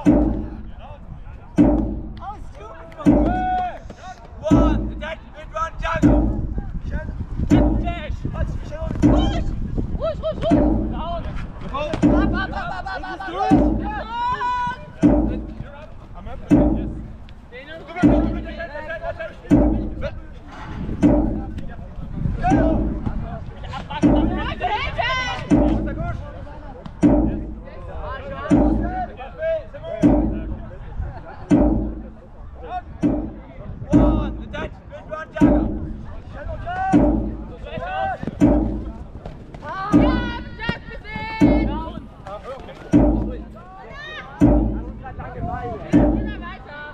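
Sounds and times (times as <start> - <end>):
heavy drum beats: 0.0 - 0.9, 1.5 - 3.8, 4.4 - 18.8, 19.4 - 29.4, 30.0 - 42.3, 42.9 - 46.9.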